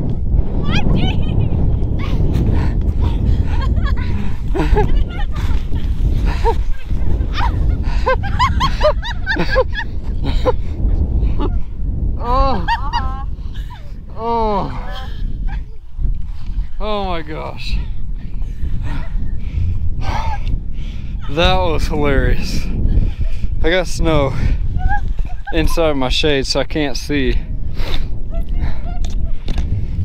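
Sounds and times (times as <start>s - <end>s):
wind rumble on microphone: 0.0s - 30.0s
people laughing: 3.1s - 11.6s, 12.2s - 14.0s, 24.8s - 26.0s
people crying out: 12.2s - 13.3s.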